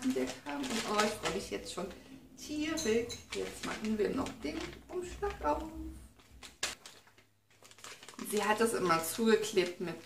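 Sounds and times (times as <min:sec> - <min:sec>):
paper envelope rustling: 0:00.0 - 0:02.0, 0:03.3 - 0:10.0.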